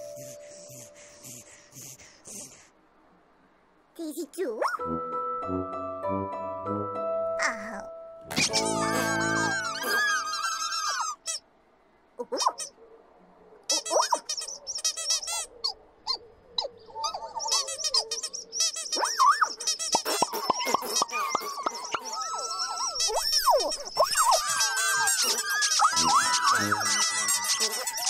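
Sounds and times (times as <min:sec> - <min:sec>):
high squeaky chattering voices: 0:17.5 - 0:28.0.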